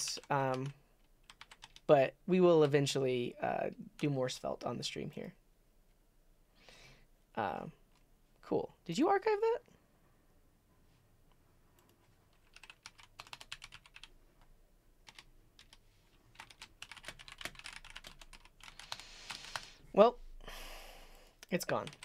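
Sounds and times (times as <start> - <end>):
typing on computer keyboard: 0.0 - 1.9, 11.8 - 14.1, 15.0 - 19.6, 21.8 - 22.0.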